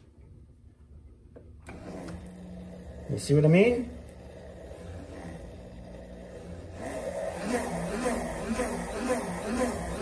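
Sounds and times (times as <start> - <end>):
motor humming: 1.6 - 10.0.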